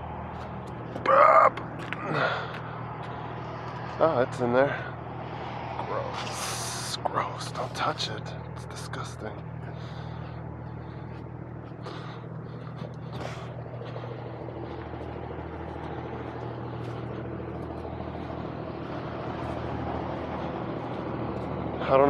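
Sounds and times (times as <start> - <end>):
truck diesel engine idling: 0.0 - 22.0.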